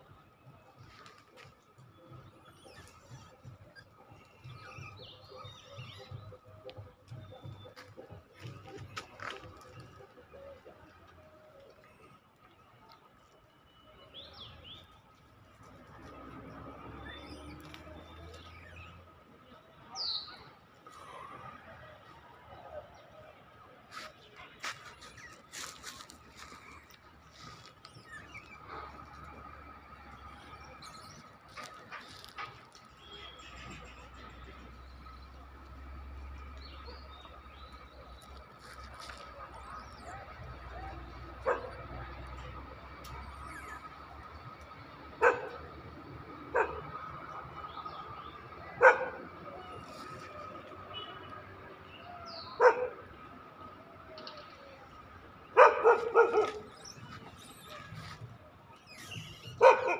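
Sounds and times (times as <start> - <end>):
dog barking: 41.4 - 41.9, 45.2 - 45.6, 46.5 - 46.9, 48.7 - 49.3, 52.6 - 53.0, 55.6 - 56.7, 59.6 - 59.9.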